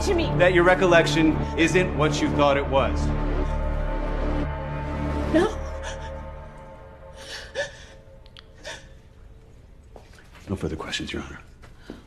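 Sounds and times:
woman gasping tearful breaths: 0:07.1 - 0:09.0.

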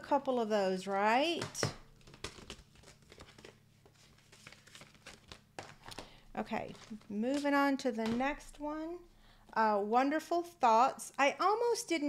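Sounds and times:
plastic and paper packaging crinkling: 0:01.4 - 0:08.7.

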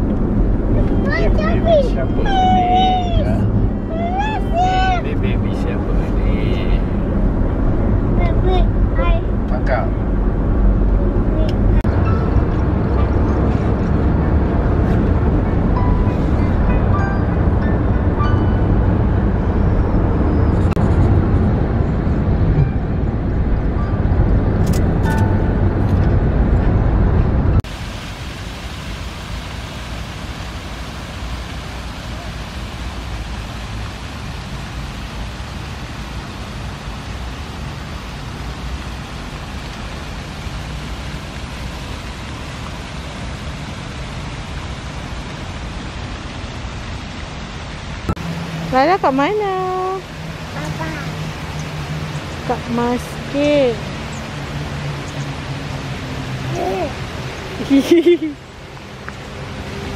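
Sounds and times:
car road and engine noise: 0:00.0 - 0:59.9
outdoor hiss: 0:27.7 - 0:59.9.

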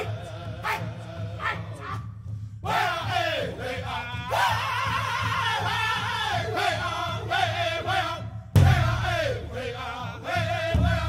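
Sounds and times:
male voices chanting: 0:00.0 - 0:11.0
steady drum beat: 0:00.0 - 0:11.0.

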